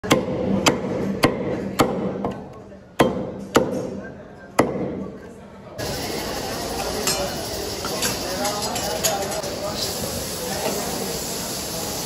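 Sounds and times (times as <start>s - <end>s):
steady hiss: 5.8s - 12.0s.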